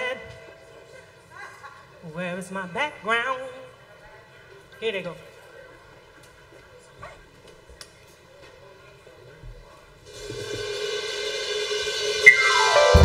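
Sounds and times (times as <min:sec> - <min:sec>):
cymbal roll: 0:10.1 - 0:13.0.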